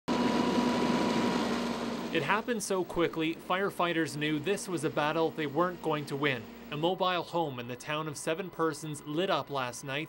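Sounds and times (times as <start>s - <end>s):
fire engine pump drone: 0.1s - 10.0s
hose stream hissing: 2.1s - 10.0s.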